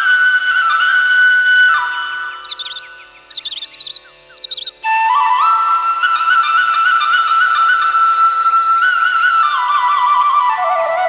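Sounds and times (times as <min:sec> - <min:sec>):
flute-like melody: 0:00.0 - 0:03.5, 0:04.7 - 0:11.0
bird-like chirps in music: 0:00.0 - 0:11.0.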